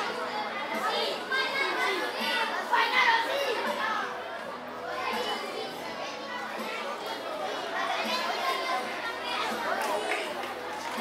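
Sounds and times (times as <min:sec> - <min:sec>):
schoolchildren chattering: 0:00.0 - 0:11.0.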